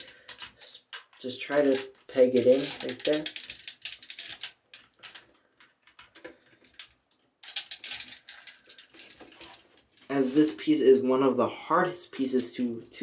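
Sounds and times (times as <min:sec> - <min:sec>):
hard plastic clicking and creaking: 0:00.0 - 0:10.1.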